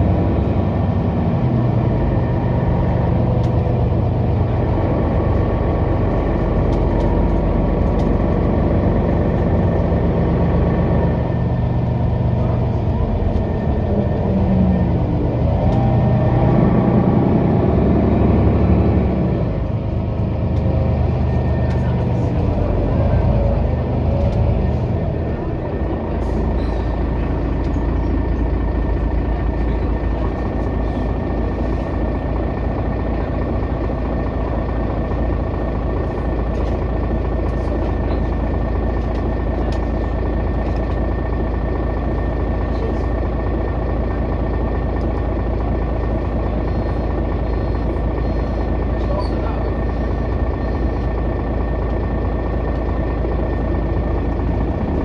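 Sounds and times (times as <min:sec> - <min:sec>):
bus engine idling: 0:00.0 - 0:55.0.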